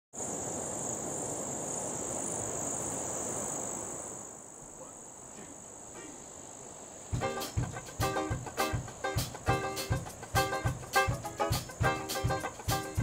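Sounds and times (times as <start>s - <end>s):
insect chorus buzzing: 0.2s - 13.0s.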